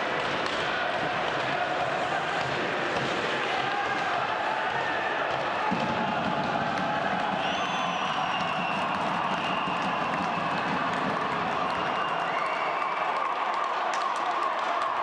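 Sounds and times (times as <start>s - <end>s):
crowd voices din: 0.0s - 12.4s
high whistles: 7.3s - 10.9s, 11.6s - 13.1s.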